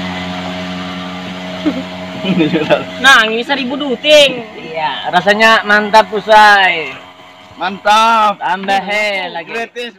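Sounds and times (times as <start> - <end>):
small motorcycle engine droning: 0.0 - 9.9.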